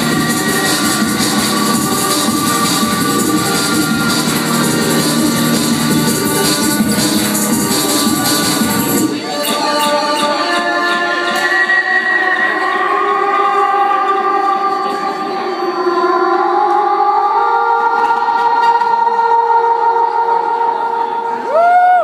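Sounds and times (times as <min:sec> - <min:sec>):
sustained synthesizer chords: 0:00.0 - 0:21.5.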